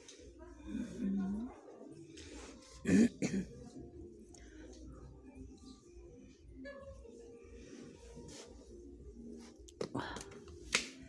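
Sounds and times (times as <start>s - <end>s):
faint background voices: 0.0s - 11.0s.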